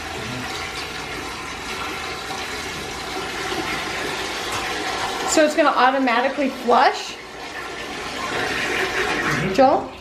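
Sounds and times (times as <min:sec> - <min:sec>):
hose water splashing into toilet: 0:00.0 - 0:10.0.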